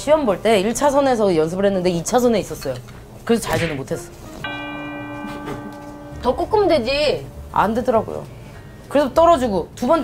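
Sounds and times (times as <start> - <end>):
bell-like chime: 4.4 - 7.7.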